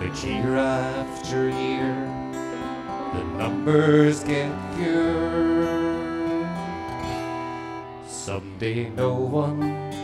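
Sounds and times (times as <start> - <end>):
accordion holding chords: 0.0 - 10.0
acoustic guitars strumming: 0.0 - 10.0.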